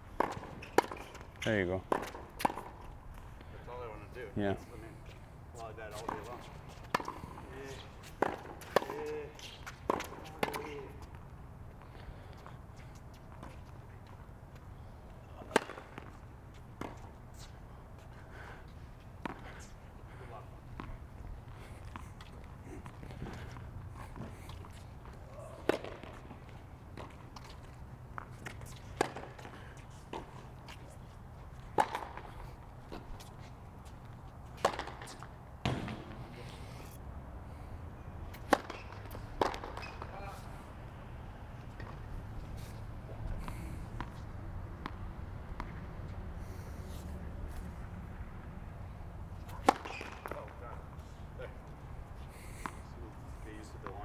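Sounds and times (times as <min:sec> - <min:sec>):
tennis ball bounces: 0:00.2 - 0:01.3, 0:01.9 - 0:02.9, 0:08.1 - 0:11.0, 0:15.4 - 0:16.2, 0:25.6 - 0:27.6, 0:28.2 - 0:30.6, 0:31.7 - 0:32.3, 0:34.6 - 0:36.2, 0:38.3 - 0:40.2, 0:49.4 - 0:50.6
tennis ball struck by racket: 0:01.9 - 0:02.8, 0:15.4 - 0:16.0, 0:25.6 - 0:26.4, 0:31.8 - 0:32.3, 0:34.6 - 0:36.3, 0:38.3 - 0:40.1, 0:49.4 - 0:50.5.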